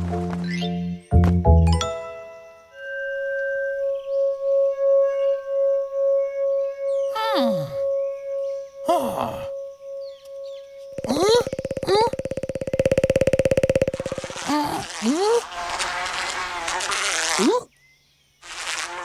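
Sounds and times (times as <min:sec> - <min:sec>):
wavering tone: 0:02.6 - 0:14.9
rising vocal chirps: 0:07.0 - 0:15.5
rapid buzzing: 0:09.2 - 0:17.5, 0:18.4 - 0:19.0
cartoon voices sliding down: 0:11.0 - 0:12.8, 0:13.9 - 0:15.5, 0:17.4 - 0:17.7.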